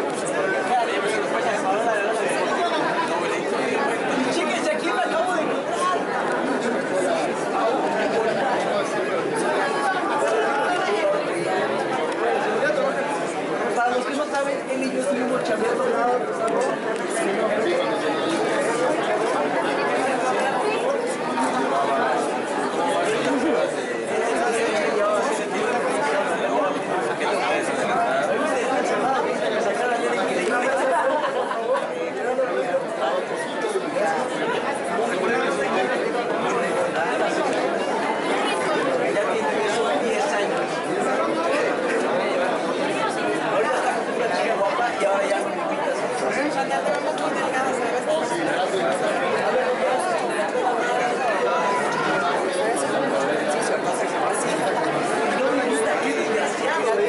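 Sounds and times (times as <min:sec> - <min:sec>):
crowd chatter: 0:00.0 - 0:57.0.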